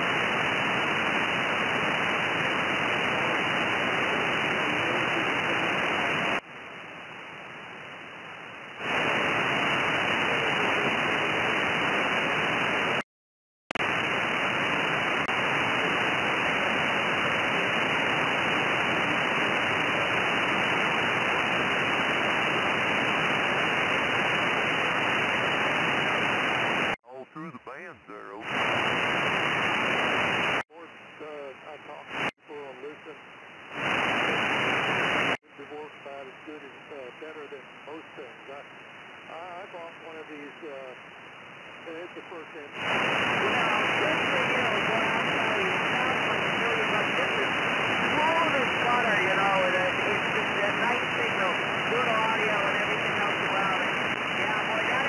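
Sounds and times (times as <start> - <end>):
radio band noise hiss: 0.0 - 13.0, 13.8 - 55.0
radio voice snatches: 27.0 - 29.2.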